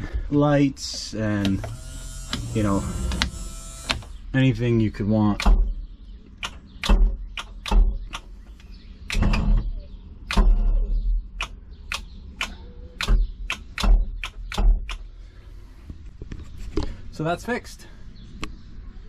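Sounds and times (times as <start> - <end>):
sharp clicks and knocks: 5.3 - 5.8, 6.4 - 15.1
dull low thumps: 5.3 - 12.4.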